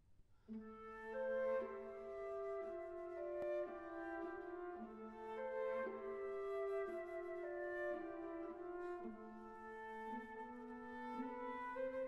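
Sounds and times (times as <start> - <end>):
orchestra woodwinds holding notes: 0.7 - 12.0.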